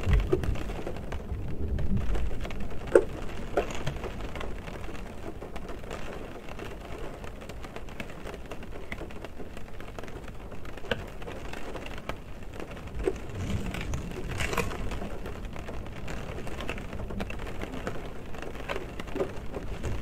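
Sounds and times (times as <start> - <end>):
rain drops hitting a car: 0.0 - 20.0
low rumble: 12.7 - 17.3.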